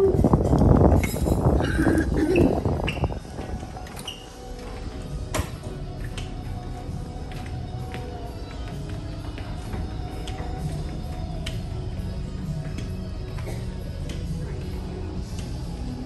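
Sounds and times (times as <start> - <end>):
wind on microphone: 0.0 - 4.2
background music: 0.0 - 16.0.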